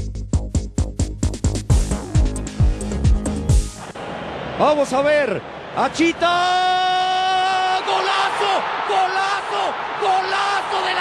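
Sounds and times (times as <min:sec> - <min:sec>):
man shouting commentary: 0:04.7 - 0:11.0.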